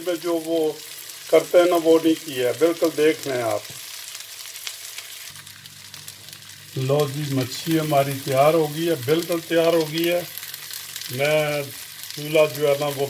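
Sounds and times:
person talking: 0.0s - 3.7s, 6.8s - 10.3s, 11.1s - 13.0s
fish sizzling in oil: 0.0s - 13.0s.

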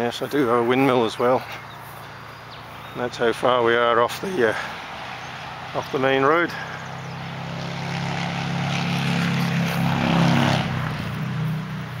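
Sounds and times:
passing vehicle engine droning: 0.5s - 12.0s.

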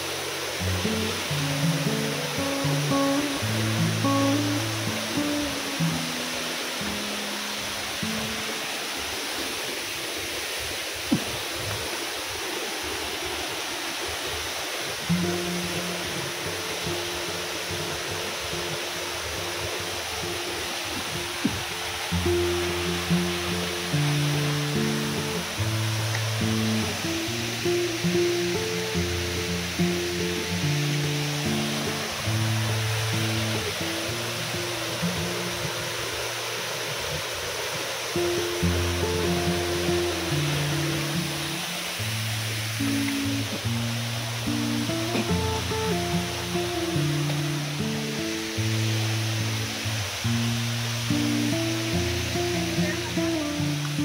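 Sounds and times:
falling water rushing: 0.0s - 54.0s
slow melodic background music: 0.1s - 9.3s, 15.0s - 54.0s.

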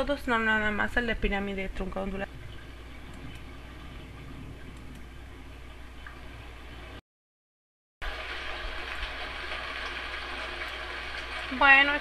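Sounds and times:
low hum: 0.0s - 7.0s.

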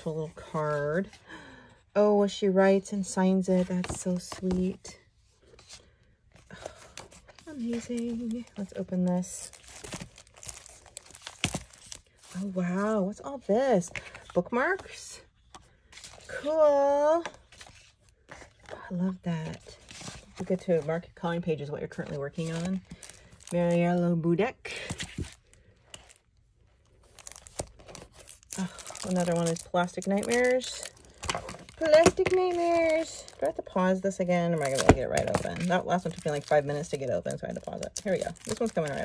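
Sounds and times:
plastic wrapping crinkling: 7.2s - 12.5s, 22.4s - 24.0s, 24.8s - 33.7s, 34.6s - 39.0s.

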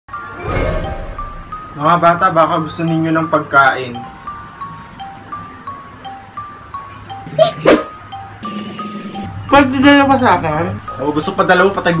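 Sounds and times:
chiming background music: 0.1s - 12.0s.

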